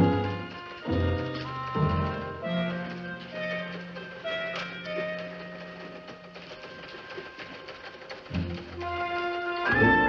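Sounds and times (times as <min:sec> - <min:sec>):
teletype machine clattering: 0:00.0 - 0:10.0.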